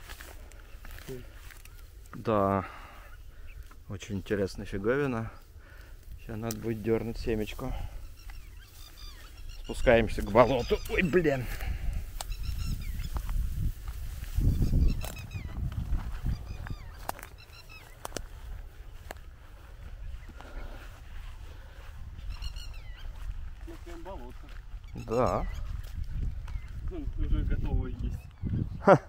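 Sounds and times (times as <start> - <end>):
birds chirping: 0.0 - 29.0
bird honking call: 8.0 - 11.4
wind rumble on microphone: 10.9 - 29.0.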